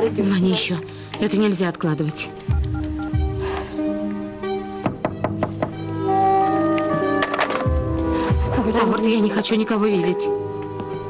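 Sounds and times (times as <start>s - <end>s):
background music sustained tones: 0.0s - 11.0s
knocking on a door: 4.8s - 5.8s.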